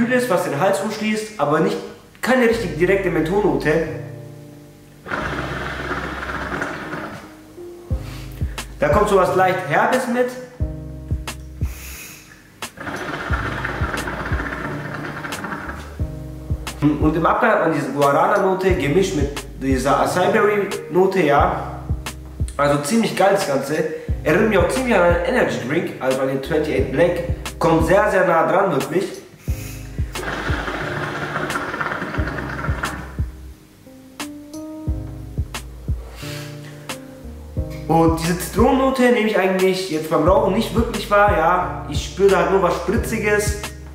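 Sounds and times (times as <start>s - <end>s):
background music with low beats: 2.5s - 6.3s, 7.3s - 12.0s, 12.6s - 28.2s, 29.1s - 39.0s, 40.2s - 43.9s
water bubbling in hookah: 12.8s - 15.8s, 30.1s - 33.2s.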